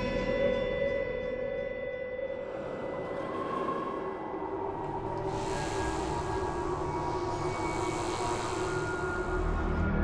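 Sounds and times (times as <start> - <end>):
dark ambient drone score: 0.0 - 10.0.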